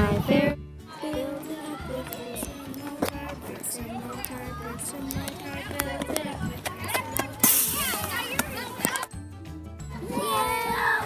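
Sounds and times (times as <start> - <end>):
children squealing and chattering: 0.9 - 9.2, 9.8 - 11.0.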